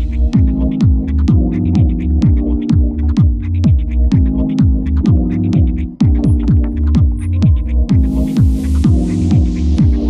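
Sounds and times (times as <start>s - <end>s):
house dance music: 0.0s - 10.0s.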